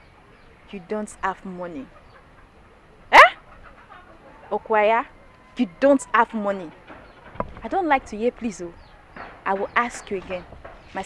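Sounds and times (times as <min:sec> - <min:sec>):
woman's questioning exclamation: 0:03.1 - 0:03.4.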